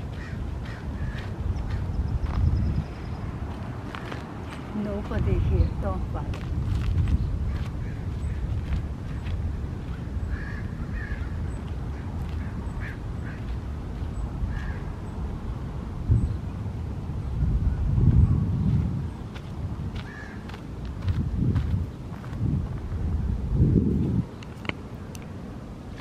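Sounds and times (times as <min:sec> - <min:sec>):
footsteps on gravel: 0:00.0 - 0:10.6, 0:11.6 - 0:14.2, 0:18.7 - 0:22.9
wind noise on microphone: 0:00.0 - 0:26.0.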